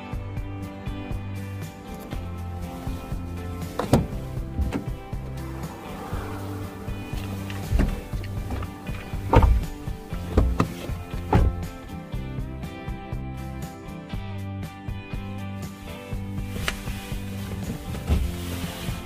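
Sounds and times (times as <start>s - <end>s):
background music: 0.0s - 19.0s
car door knocks and thuds: 3.7s - 5.6s, 7.1s - 11.9s.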